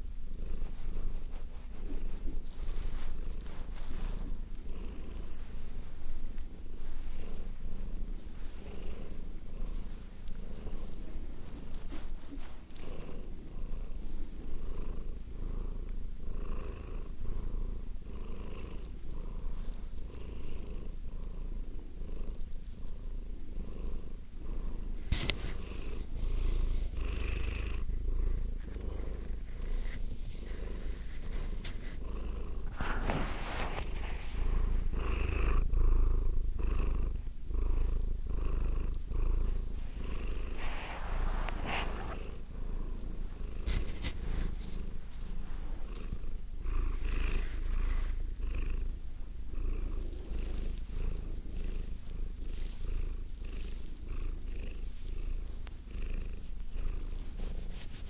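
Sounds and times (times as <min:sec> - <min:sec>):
cat purring: 0:00.0 - 0:58.0.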